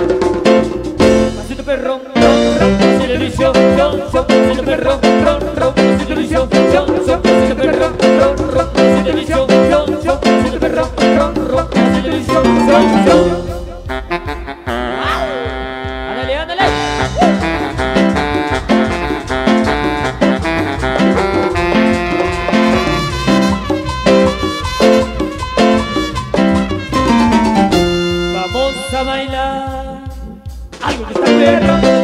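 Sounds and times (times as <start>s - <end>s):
live latin dance band: 0.0s - 32.0s.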